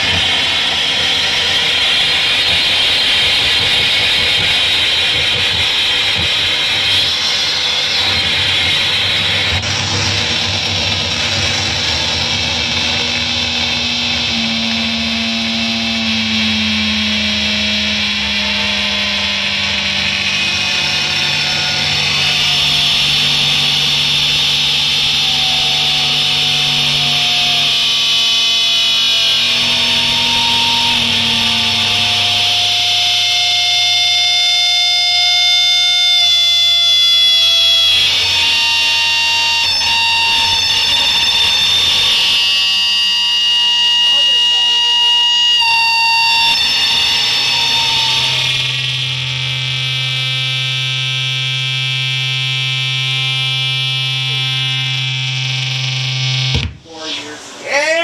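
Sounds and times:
loud distorted noise rock: 0.0s - 58.0s.

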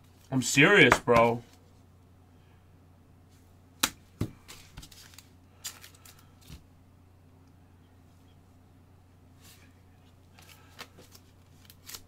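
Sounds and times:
faint low hum: 0.0s - 12.0s
trading cards clicks and rustles: 4.4s - 6.6s, 10.3s - 12.0s.

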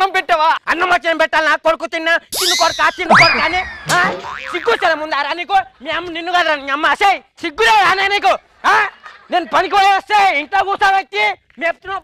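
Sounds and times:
wavering voice-like wail: 2.4s - 4.0s
cartoon hit: 2.4s - 4.9s.

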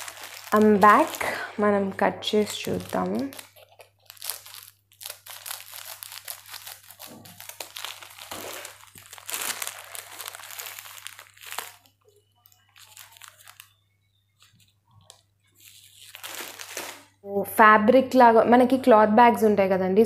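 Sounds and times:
plastic packaging crinkling: 0.0s - 17.2s.

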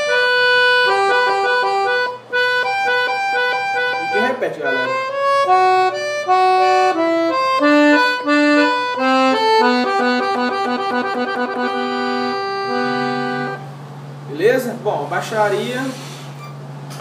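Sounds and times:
accordion melody: 0.0s - 14.3s.

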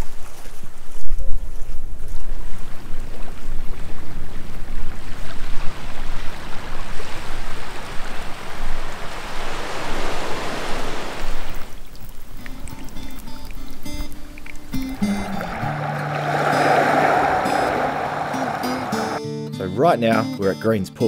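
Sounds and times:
small waves washing onto sand: 2.3s - 13.7s, 14.7s - 19.2s.

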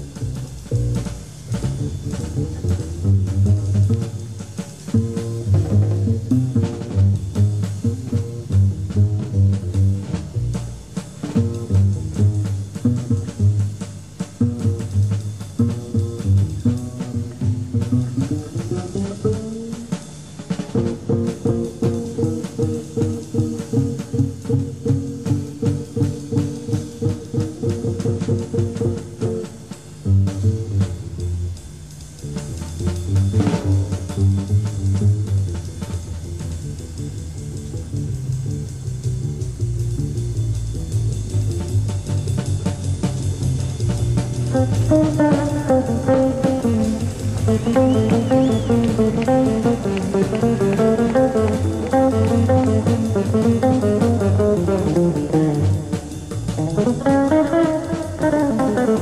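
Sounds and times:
busy drums: 0.0s - 59.0s
jazz trio playing: 0.0s - 59.0s.

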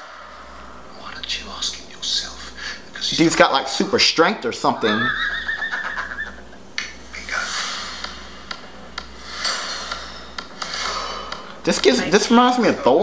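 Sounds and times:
man laughing high-pitched: 4.8s - 6.6s
whooshes: 7.2s - 11.4s.

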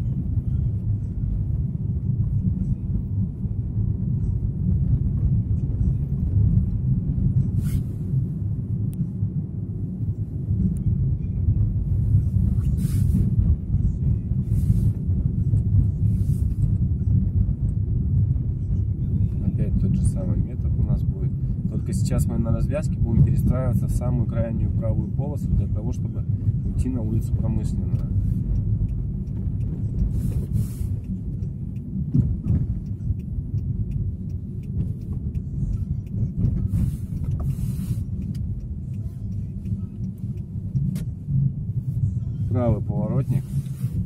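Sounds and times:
car engine and tyres rumbling: 0.0s - 44.0s.

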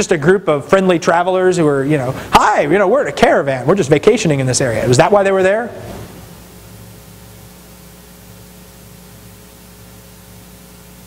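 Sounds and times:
steady hiss: 0.0s - 11.0s
low hum: 4.6s - 11.0s.

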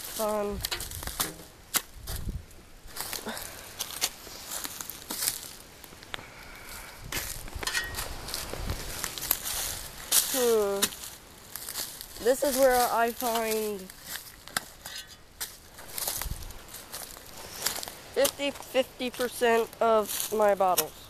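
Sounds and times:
footsteps crunching through dry leaves: 0.0s - 21.0s.

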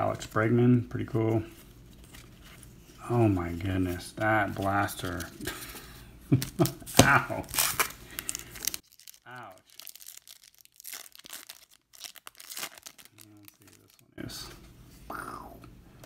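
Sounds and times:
foil wrapper tearing and crinkling: 6.3s - 14.0s.

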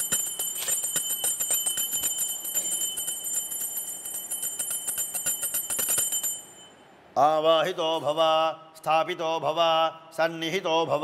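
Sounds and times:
hand bell rung rapidly: 0.0s - 6.7s.

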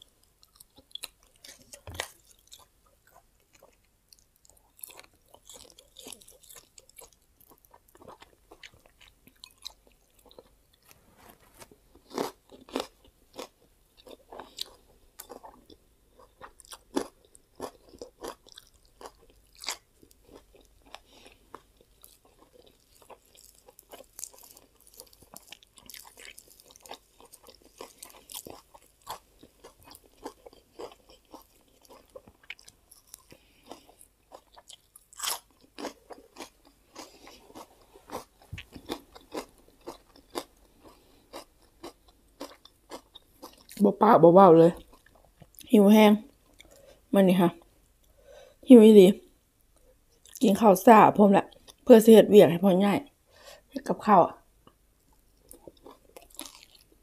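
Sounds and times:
person chewing and crunching food: 0.0s - 43.9s, 44.6s - 48.6s, 49.7s - 50.4s, 51.4s - 51.9s, 54.4s - 57.0s.

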